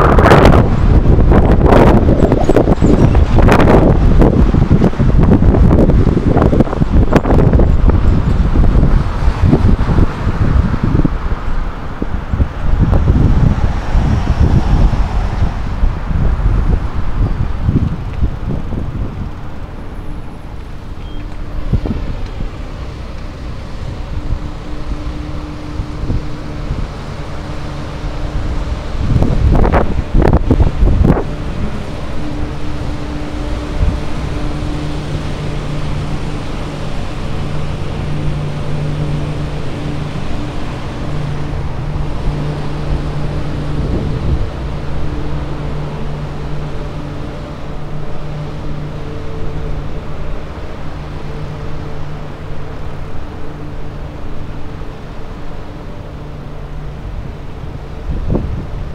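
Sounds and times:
steady low hum: 0.0s - 58.9s
street traffic: 0.0s - 58.9s
wind on microphone: 0.0s - 58.9s.

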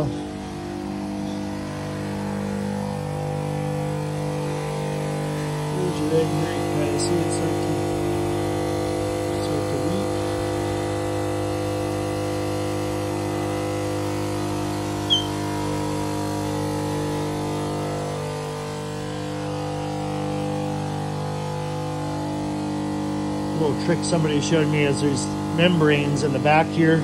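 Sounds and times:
electric pump humming: 0.0s - 27.0s
brief high chirp: 15.1s - 15.4s.

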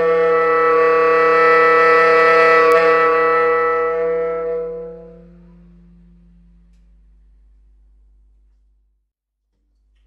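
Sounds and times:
baritone saxophone holding a note: 0.0s - 7.3s.

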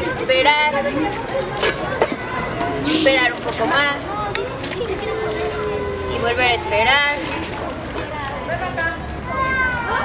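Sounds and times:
indistinct voices talking: 0.0s - 10.0s.

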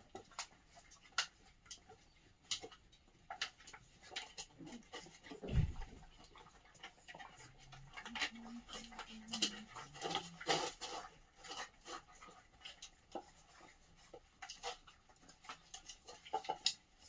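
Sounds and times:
puppies crunching dry kibble: 0.0s - 17.0s
dull thump: 5.5s - 6.0s.

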